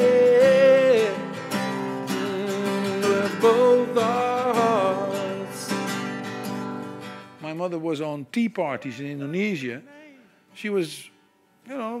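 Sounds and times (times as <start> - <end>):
man singing: 0.0 - 6.1, 9.5 - 10.3, 11.7 - 12.0
strummed acoustic guitar: 0.0 - 7.5.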